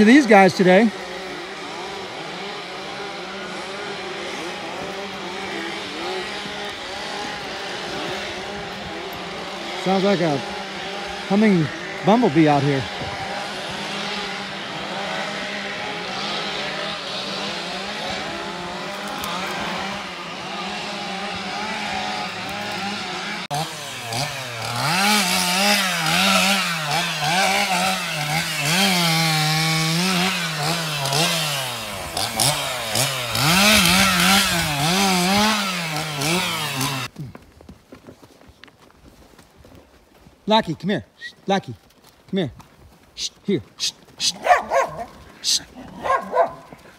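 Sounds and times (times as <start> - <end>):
chainsaw engine revving: 0.0 - 37.2, 43.2 - 46.9.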